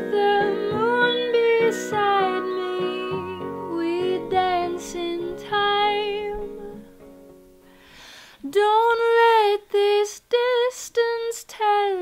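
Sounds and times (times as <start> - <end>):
woman singing pop melody: 0.0 - 7.1, 8.4 - 12.0
soft instrumental backing: 0.0 - 8.6.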